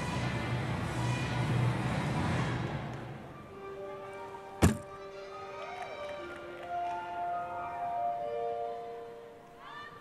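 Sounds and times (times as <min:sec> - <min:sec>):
feet landing on balance beam: 0:04.6 - 0:04.9.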